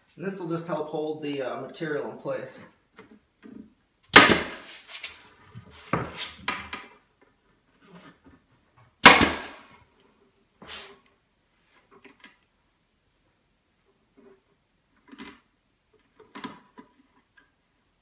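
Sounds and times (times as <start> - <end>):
staple gun firing: 4.2 - 4.6, 9.0 - 9.6.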